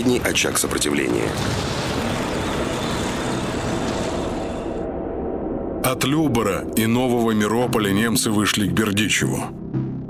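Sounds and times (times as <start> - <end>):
tank engines and tracks rumbling: 0.0 - 4.9.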